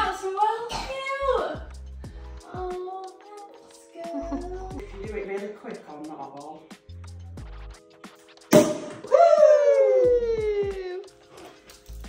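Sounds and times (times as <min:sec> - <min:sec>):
cork popping from bottle: 0:08.5 - 0:09.1
person calling woo: 0:09.0 - 0:11.1.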